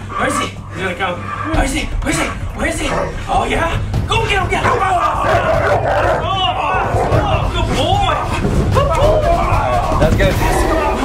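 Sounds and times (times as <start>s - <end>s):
voices shouting: 4.5s - 11.0s.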